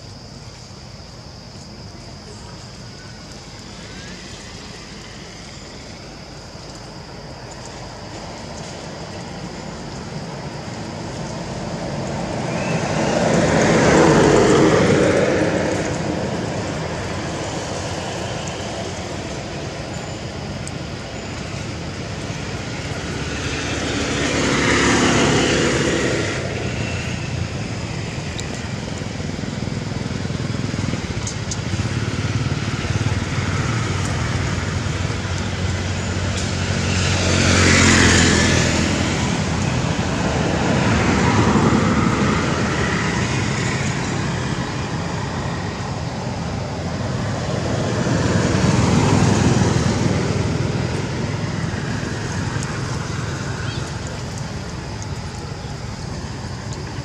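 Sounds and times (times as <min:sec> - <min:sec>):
background traffic noise: 0:00.0 - 0:57.0
vehicles passing by: 0:00.0 - 0:57.0.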